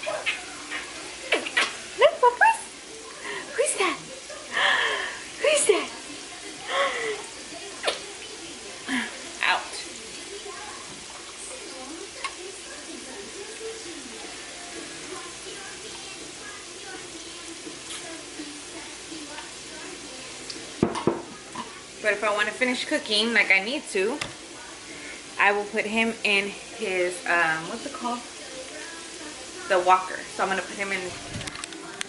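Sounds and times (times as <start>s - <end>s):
faint crackles: 0.0s - 23.6s, 27.6s - 32.0s
potatoes sizzling in a pan: 0.0s - 32.0s.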